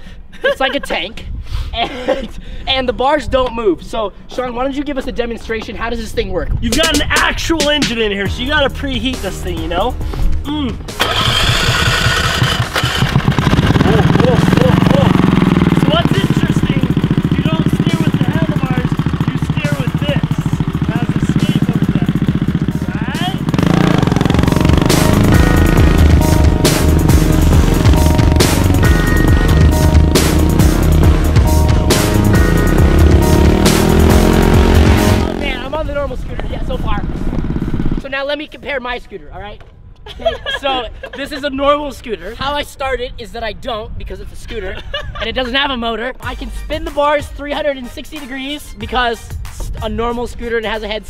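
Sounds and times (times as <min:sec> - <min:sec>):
music playing: 0:06.6 - 0:11.4, 0:13.8 - 0:36.2
small gasoline engine revving: 0:11.0 - 0:35.9, 0:37.0 - 0:38.0.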